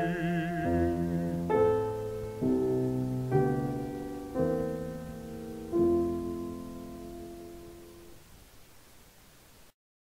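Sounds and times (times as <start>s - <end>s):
piano chord ringing: 0.0s - 8.2s
recording hiss: 0.0s - 9.8s.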